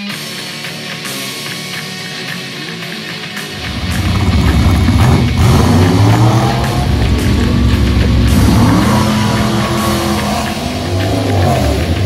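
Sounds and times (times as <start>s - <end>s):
drag car engines running loud: 3.5s - 12.0s
engine revving up: 3.6s - 12.0s.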